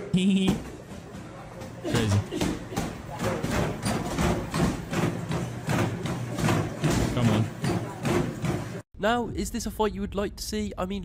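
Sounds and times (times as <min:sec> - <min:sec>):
footfalls on a treadmill: 0:00.5 - 0:08.8.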